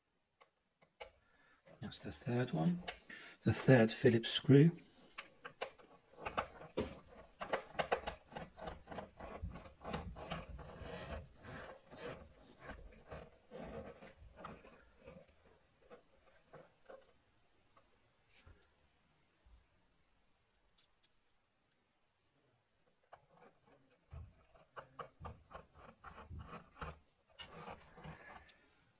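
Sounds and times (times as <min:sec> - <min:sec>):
screwdriver turning screws: 0:05.2 - 0:17.2, 0:23.0 - 0:28.9.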